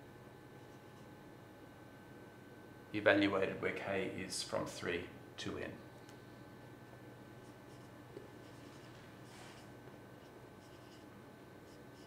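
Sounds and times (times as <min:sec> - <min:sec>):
marker scratching on whiteboard: 0:07.4 - 0:12.0.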